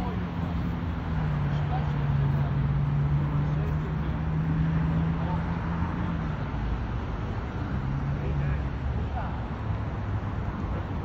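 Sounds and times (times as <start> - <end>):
outdoor noise: 0.0 - 11.0.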